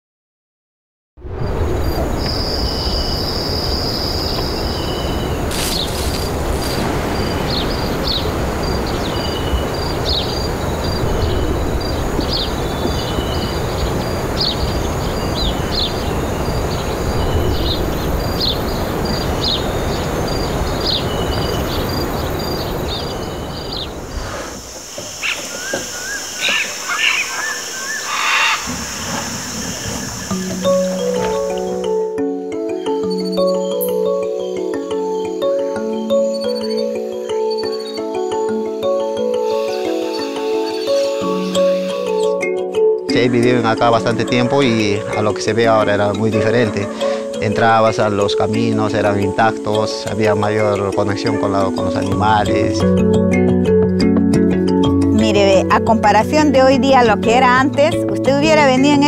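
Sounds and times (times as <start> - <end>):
high insect drone: 1.3 - 51.4
low rumble: 10.4 - 14.7
short bird calls: 24.1 - 30.4
music: 30.1 - 59.0.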